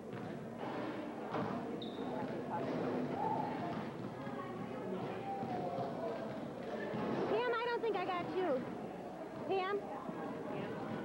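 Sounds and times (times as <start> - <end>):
crowd chatter: 0.0 - 11.0
high shoe squeak: 1.8 - 2.2.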